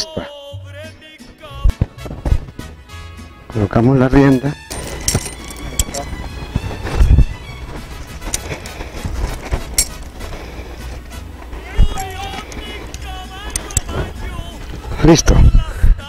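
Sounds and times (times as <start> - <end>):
horse tack clicking and knocking: 4.7 - 6.1, 8.2 - 10.2, 11.8 - 14.0
steady low rumble: 4.7 - 16.0.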